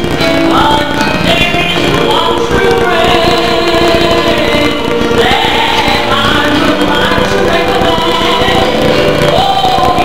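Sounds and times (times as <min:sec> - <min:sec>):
female soloist singing: 0:00.5 - 0:10.0
gospel choir singing: 0:01.3 - 0:10.0.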